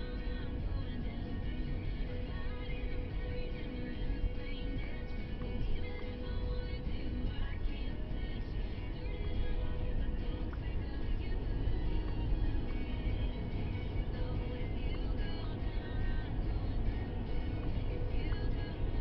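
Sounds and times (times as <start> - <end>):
car engine and road rumble: 0.0 - 19.0
music playing in car: 0.0 - 19.0.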